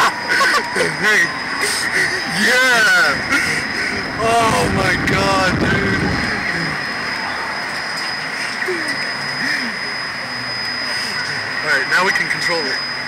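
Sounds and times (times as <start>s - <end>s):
wind rushing over microphone: 2.2s - 7.7s.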